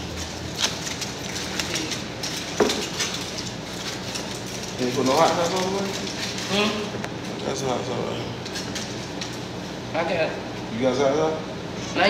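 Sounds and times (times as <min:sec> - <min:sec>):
food packaging rustling: 0:00.0 - 0:09.8
dishes clicking: 0:01.2 - 0:07.2.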